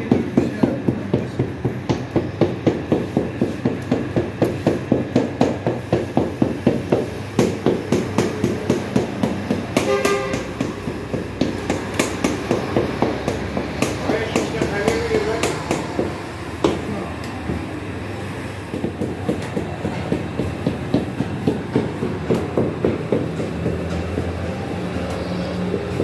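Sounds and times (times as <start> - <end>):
docking tool tapping into dough: 0.0 - 16.9.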